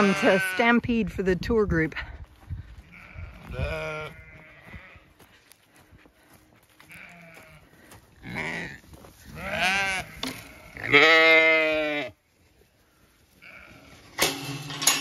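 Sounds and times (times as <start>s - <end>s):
sheep bleating: 0.0s - 0.8s, 2.9s - 5.2s, 6.8s - 12.2s, 13.4s - 14.0s.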